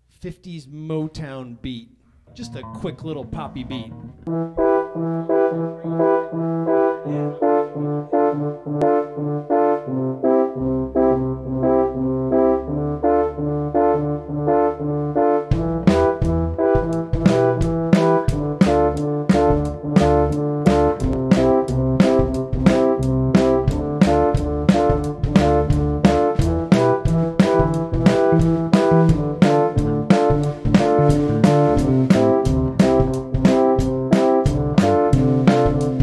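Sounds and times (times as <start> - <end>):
bass guitar: 2.2 - 8.8, 9.9 - 36.0
keyboard chords: 2.3 - 36.0
drum kit beat: 15.5 - 36.0.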